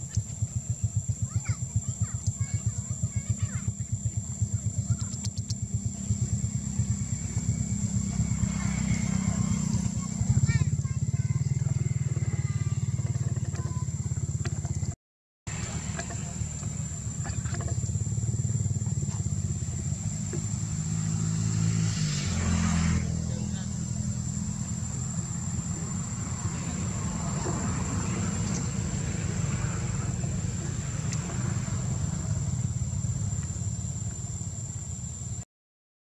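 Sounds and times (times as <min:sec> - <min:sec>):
motor vehicle engine running: 0:00.0 - 0:35.4.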